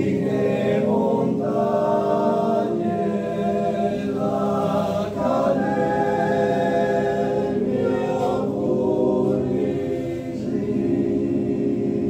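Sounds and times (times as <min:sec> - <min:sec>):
male choir singing: 0:00.0 - 0:12.0.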